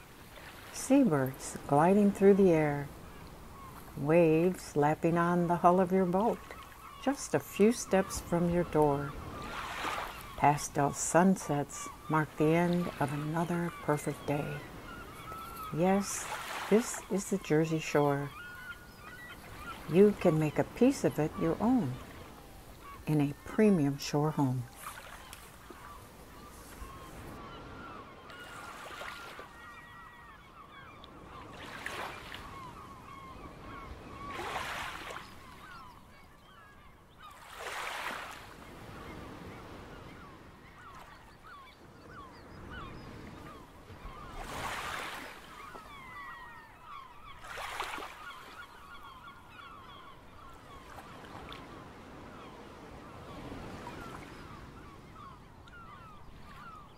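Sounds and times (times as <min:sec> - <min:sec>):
waves washing: 0:00.0 - 0:18.4
waterbirds calling: 0:00.0 - 0:56.9.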